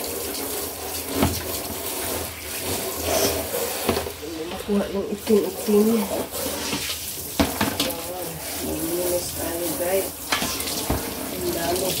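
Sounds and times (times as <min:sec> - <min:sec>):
shower spray on plastic tray: 0:00.0 - 0:12.0.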